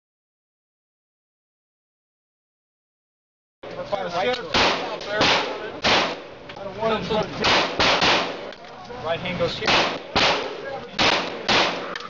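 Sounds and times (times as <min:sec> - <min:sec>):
gunshots with booming echo: 0:04.5 - 0:06.4, 0:07.4 - 0:08.5, 0:09.6 - 0:12.0.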